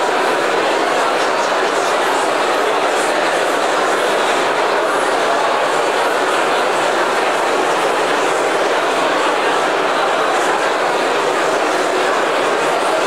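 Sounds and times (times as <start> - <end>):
crowd babble in a large hall: 0.0 - 13.0.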